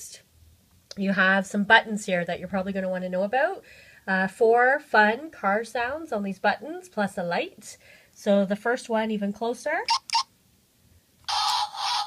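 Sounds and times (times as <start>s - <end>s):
electronic toy car sound effect: 9.9s - 10.3s, 11.3s - 12.0s.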